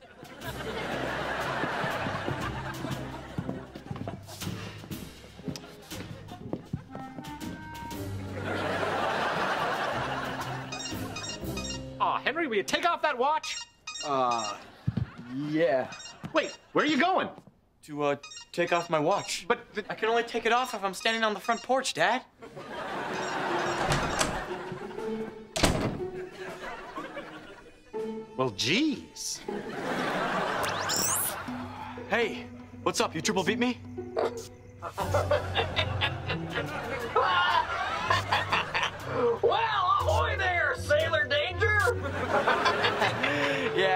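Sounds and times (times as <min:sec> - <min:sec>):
background music: 0:00.0 - 0:43.9
footsteps on hard floor: 0:01.6 - 0:07.6, 0:14.8 - 0:15.3
door opening click: 0:23.2 - 0:24.5, 0:25.6 - 0:26.1
door shutting thunk: 0:23.5 - 0:24.5, 0:25.6 - 0:26.2.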